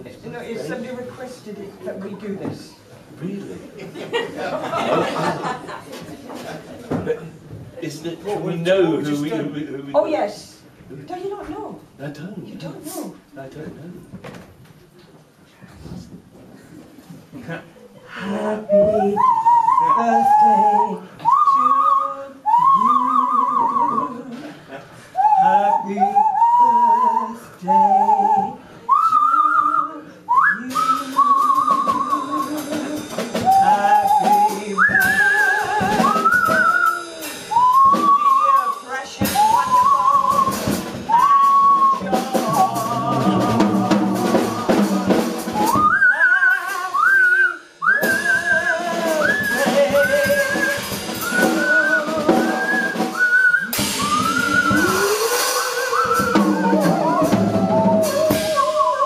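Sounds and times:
lower sung voice: 18.1s - 59.0s
whistle-like high vocal tones: 18.7s - 24.2s, 25.2s - 32.5s, 33.4s - 43.4s, 45.5s - 59.0s
drum and cymbal hits: 30.6s - 59.0s.

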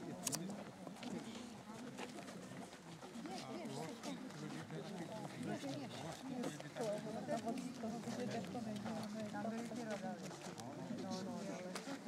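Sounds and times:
people chattering: 0.0s - 12.0s
footsteps on asphalt: 0.4s - 12.0s.

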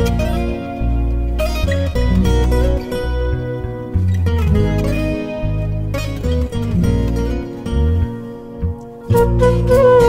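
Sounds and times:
bass guitar line: 0.0s - 10.0s
plucked acoustic guitar: 0.0s - 10.0s.

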